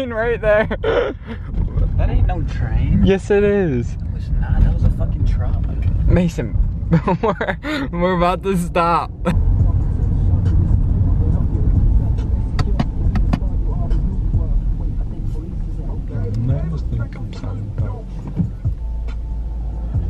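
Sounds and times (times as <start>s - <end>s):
car cabin rumble: 0.0s - 20.0s.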